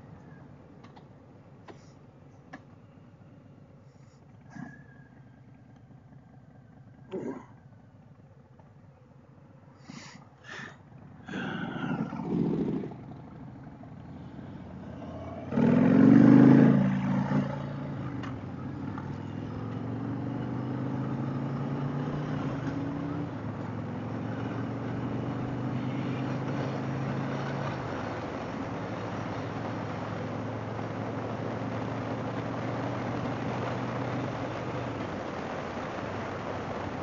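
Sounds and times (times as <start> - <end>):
motorcycle engine pulling away: 2.8 - 9.7, 10.5 - 37.0.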